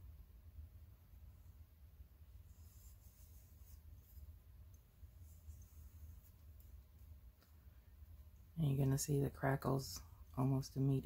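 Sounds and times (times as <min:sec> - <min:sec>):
low steady hum: 0:00.0 - 0:11.0
paintbrush strokes: 0:01.1 - 0:09.0.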